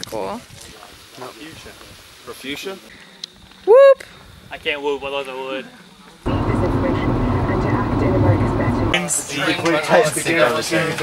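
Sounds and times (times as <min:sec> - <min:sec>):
vehicle engine rumble: 0:06.3 - 0:09.0
road noise in car cabin: 0:06.3 - 0:09.1.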